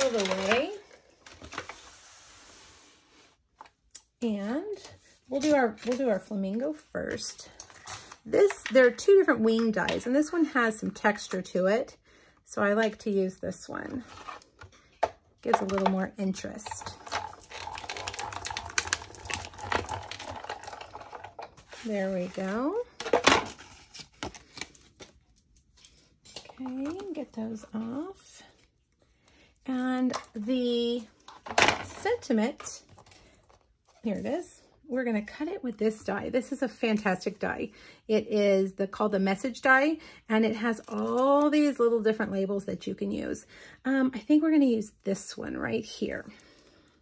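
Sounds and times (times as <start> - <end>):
card and plastic scraping: 16.9 - 25.2.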